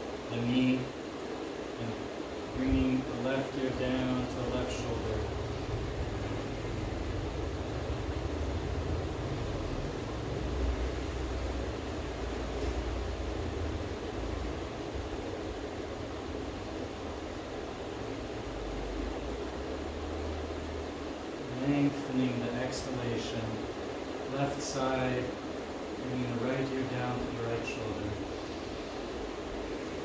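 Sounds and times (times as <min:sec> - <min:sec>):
ceiling fans rushing: 0:00.0 - 0:30.0.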